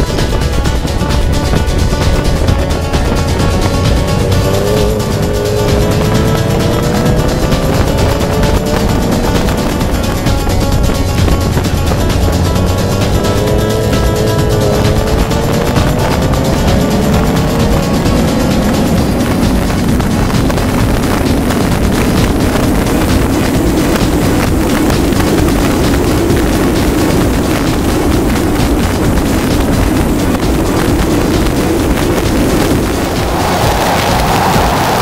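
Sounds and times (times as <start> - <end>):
car engine accelerating: 0.0 - 35.0
wind rushing on microphone: 0.0 - 35.0.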